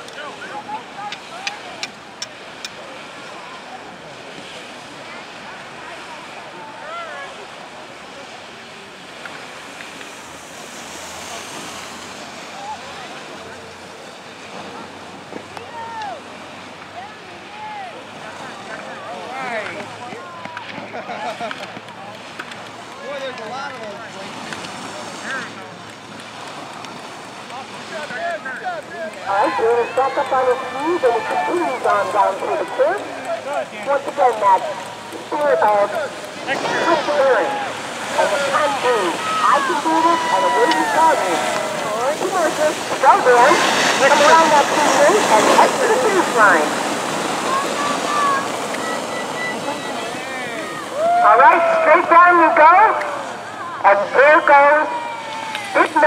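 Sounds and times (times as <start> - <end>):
outdoor hiss: 29.2 - 56.0.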